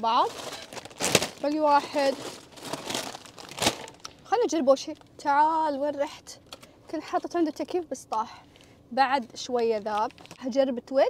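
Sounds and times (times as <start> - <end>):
plastic snack packets crinkling: 0.0 - 4.2, 9.8 - 10.5.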